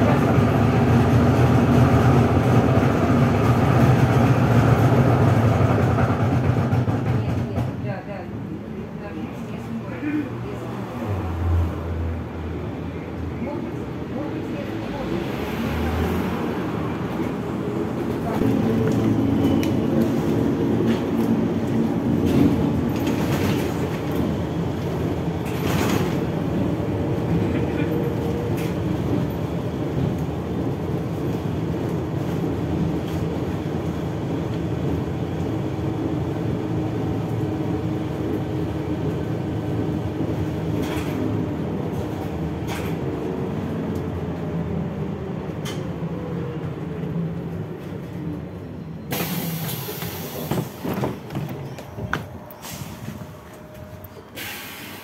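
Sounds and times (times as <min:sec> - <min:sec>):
trolleybus running noise: 0:00.0 - 0:55.0
body knocks and rattles: 0:50.5 - 0:52.3.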